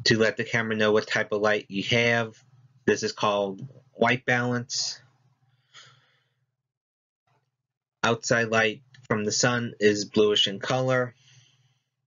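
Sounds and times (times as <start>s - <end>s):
faint breath: 5.4s - 6.5s, 11.1s - 12.0s.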